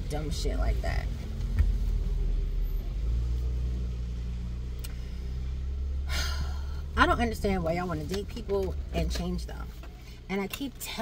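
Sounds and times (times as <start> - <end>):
car engine rumble from cabin: 0.0 - 11.0.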